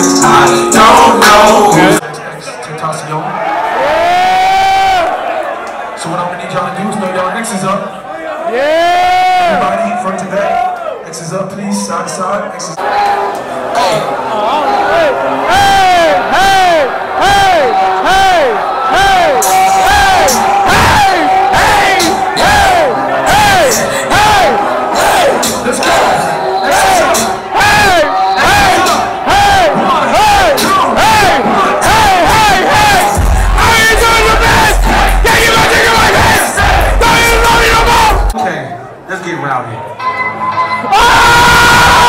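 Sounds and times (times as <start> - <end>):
live rap track with beat: 0.0 - 3.3, 16.4 - 38.5
crowd shouting along: 3.3 - 6.0, 7.9 - 11.0, 12.8 - 38.4, 40.7 - 42.0
deep bass: 33.0 - 35.4, 36.6 - 38.3.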